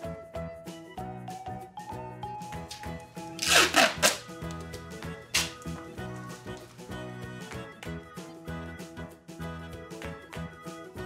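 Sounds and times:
background music: 0.0s - 11.0s
tape ripping off roll: 2.7s - 5.8s.

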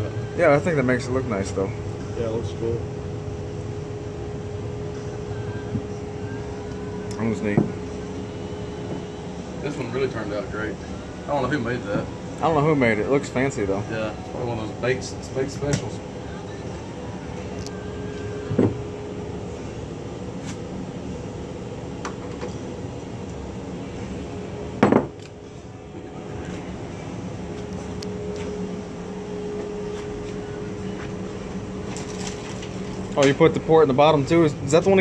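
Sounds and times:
shop hum: 0.0s - 35.0s
wooden mallet knocking on workbench: 24.8s - 25.1s.

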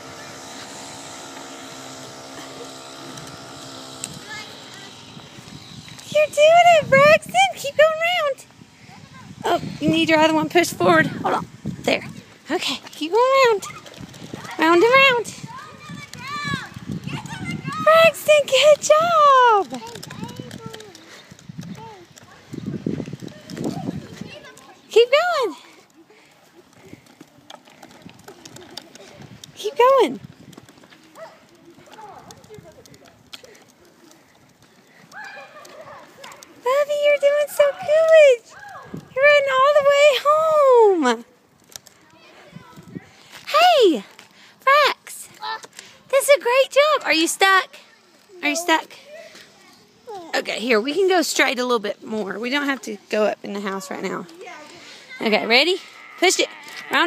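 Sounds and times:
steady engine hum: 0.0s - 41.6s.

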